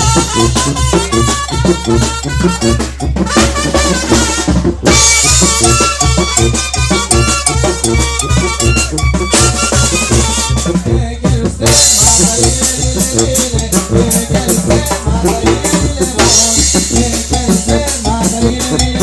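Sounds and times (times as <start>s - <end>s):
brass band playing: 0.0s - 19.0s.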